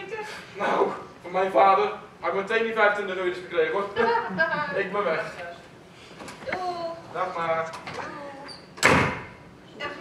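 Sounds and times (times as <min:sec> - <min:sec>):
glass door banging shut: 0:08.8 - 0:09.3.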